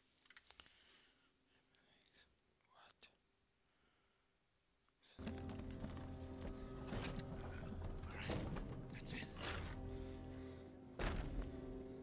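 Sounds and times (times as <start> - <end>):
low droning music score: 5.2 - 12.0.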